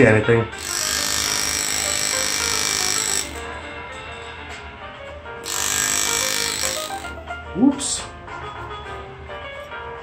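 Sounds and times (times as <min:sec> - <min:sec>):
engraving tool buzzing on metal: 0:00.6 - 0:03.6, 0:05.4 - 0:07.2.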